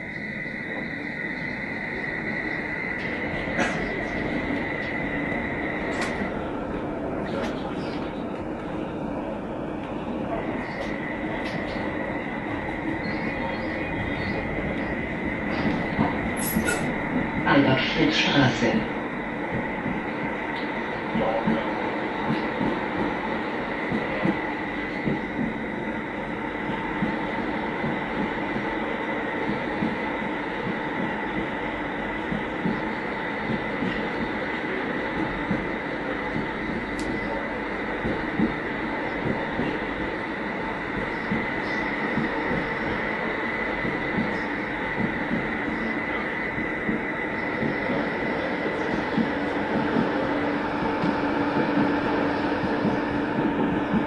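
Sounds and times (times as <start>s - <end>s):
tram wheels rolling on rail: 0.0s - 54.0s.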